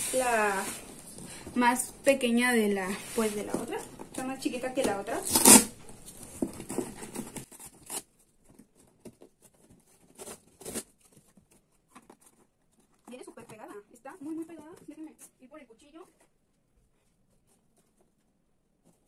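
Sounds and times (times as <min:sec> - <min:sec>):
cardboard rustling: 0:02.9 - 0:15.2
packing tape ripping: 0:05.1 - 0:08.1, 0:09.9 - 0:11.2.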